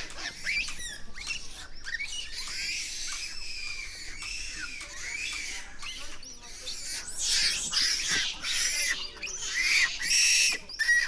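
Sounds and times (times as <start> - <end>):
monkeys squeaking and chirping: 0.0 - 11.0.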